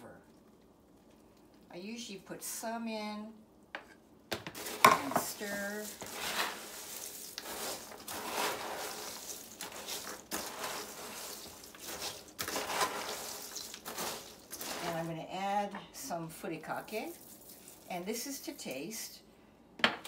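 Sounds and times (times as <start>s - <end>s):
woman speaking: 1.7s - 3.4s, 4.8s - 6.0s, 14.7s - 17.2s, 17.9s - 19.2s
wooden spoon stirring snack mix: 4.4s - 15.3s, 16.8s - 18.1s.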